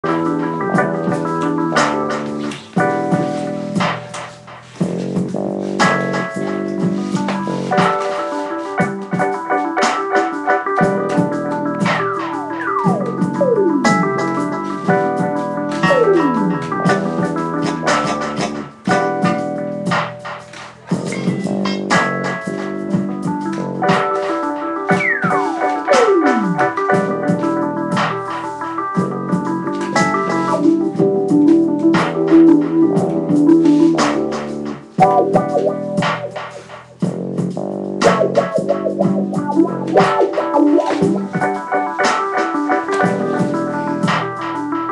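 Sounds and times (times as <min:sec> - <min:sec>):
electric piano playing quick runs: 0:00.0 - 0:36.9, 0:38.0 - 0:44.9
plucked electronic notes: 0:35.0 - 0:36.0, 0:38.0 - 0:41.4.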